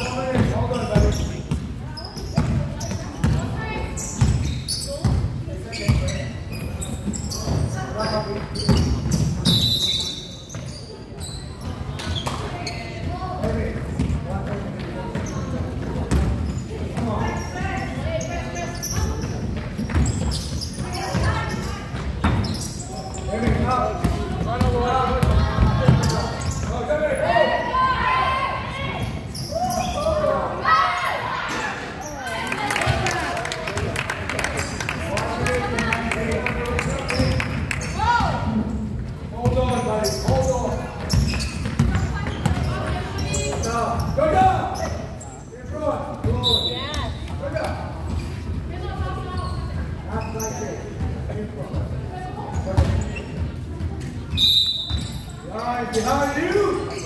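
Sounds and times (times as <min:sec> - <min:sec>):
basketball bouncing on wooden floor: 0:41.0 - 0:43.0.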